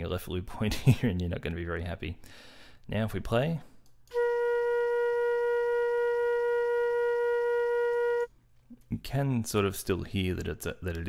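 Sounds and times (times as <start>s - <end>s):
looped flute note: 4.1s - 8.3s.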